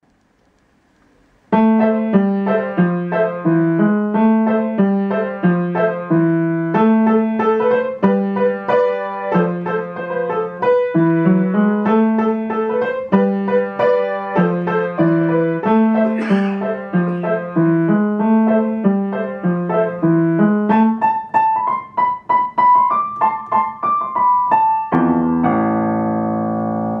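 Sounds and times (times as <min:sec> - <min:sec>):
upright piano playing: 0:01.5 - 0:27.0.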